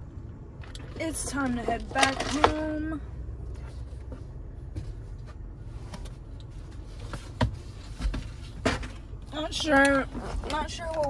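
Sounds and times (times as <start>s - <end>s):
low steady rumble: 0.0s - 11.0s
rustling of handling things: 0.7s - 11.0s.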